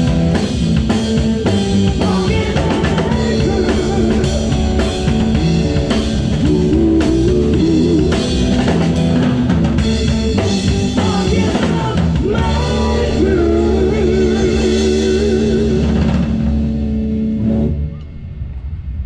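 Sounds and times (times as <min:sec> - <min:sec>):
drum kit beat: 0:00.0 - 0:16.5
electric guitars: 0:00.0 - 0:19.0
pitch-bending melodic line: 0:02.4 - 0:09.2.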